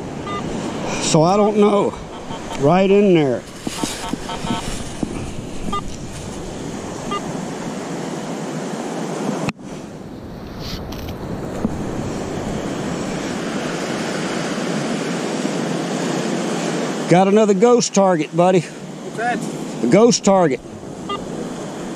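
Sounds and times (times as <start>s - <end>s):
wind on microphone: 0.0s - 17.0s, 20.5s - 21.9s
surf washing up beach: 0.0s - 21.9s.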